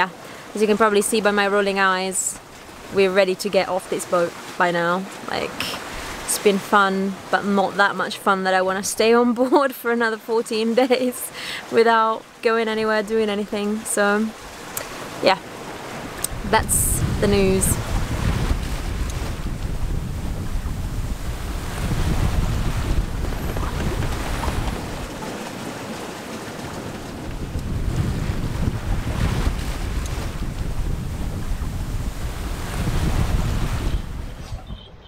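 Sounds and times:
water rushing along hull: 0.0s - 34.7s
wind buffeting microphone: 14.3s - 35.0s.

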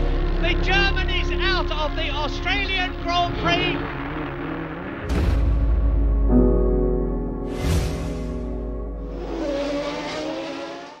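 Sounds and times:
racing car engine: 0.0s - 5.2s, 9.0s - 11.0s.

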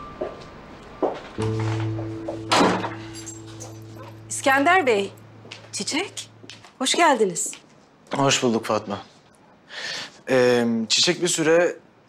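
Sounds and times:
soft background music: 1.1s - 7.7s.

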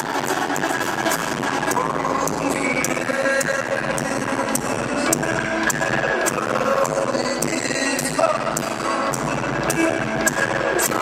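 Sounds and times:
crowd noise: 0.0s - 11.0s
live band music: 0.0s - 11.0s.

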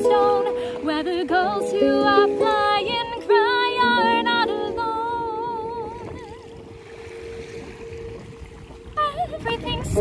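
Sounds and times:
wind rumble on microphone: 4.8s - 10.0s.

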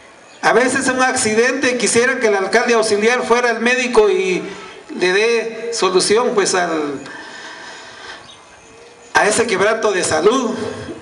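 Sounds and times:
faint background noise: 0.0s - 11.0s
man speaking: 0.4s - 7.1s, 9.1s - 11.0s.

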